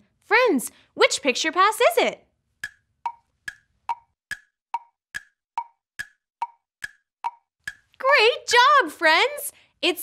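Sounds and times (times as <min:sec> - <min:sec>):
wood-block ticking clicks: 0:02.6 - 0:08.0.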